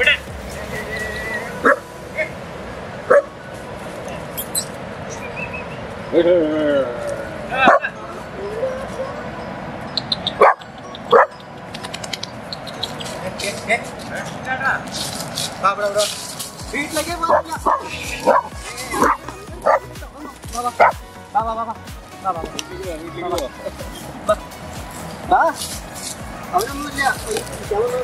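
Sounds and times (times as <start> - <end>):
small dog barking: 3.1 - 3.3, 7.6 - 7.9, 10.4 - 11.4, 17.3 - 19.9
dog digging in dry leaves: 12.8 - 20.9, 24.6 - 28.0.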